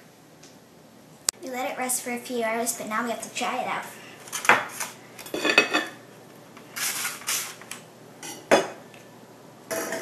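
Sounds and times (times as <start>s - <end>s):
knife and fork scraping a plate: 4.7s - 6.0s.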